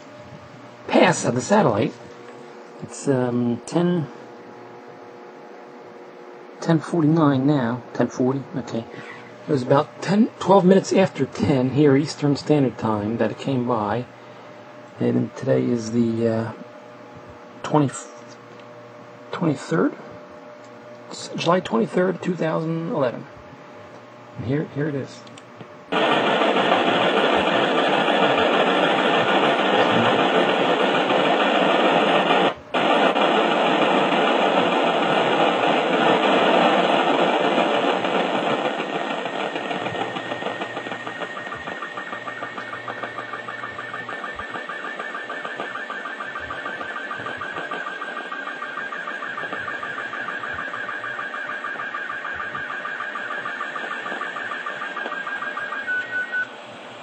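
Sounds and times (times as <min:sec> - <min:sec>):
radio static hiss: 0:25.9 - 0:56.6.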